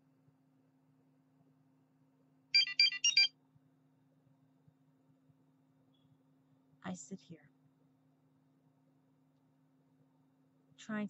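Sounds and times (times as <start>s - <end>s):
high electronic beeps: 2.6s - 3.3s.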